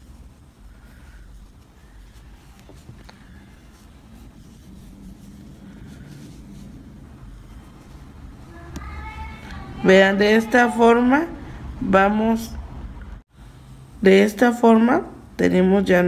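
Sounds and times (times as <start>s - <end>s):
yarn handling sounds: 0.0s - 9.9s
steady low rumble: 0.0s - 10.4s.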